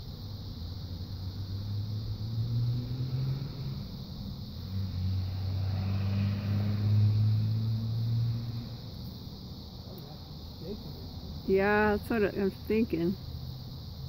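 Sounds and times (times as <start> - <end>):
vehicle engine hum: 0.0 - 14.0.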